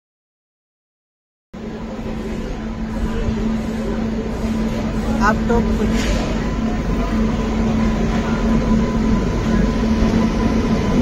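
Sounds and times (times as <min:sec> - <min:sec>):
electric locomotive hum: 0:01.6 - 0:11.0
train rumbling on rails: 0:01.6 - 0:11.0.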